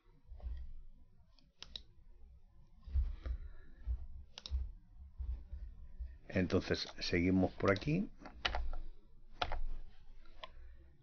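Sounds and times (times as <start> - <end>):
computer mouse clicks: 1.4 - 1.9, 4.3 - 4.6, 7.6 - 10.6
soft low thuds: 2.8 - 6.6.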